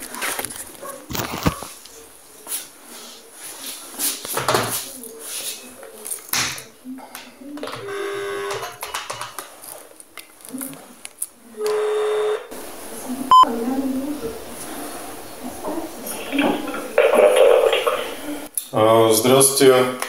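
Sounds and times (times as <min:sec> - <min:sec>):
telephone ringback tone: 0:07.8 - 0:08.6, 0:11.7 - 0:12.5.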